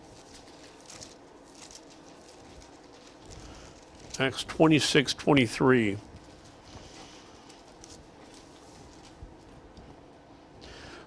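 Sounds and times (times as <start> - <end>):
rustling of thin pages: 0.0 - 4.8, 6.1 - 9.6.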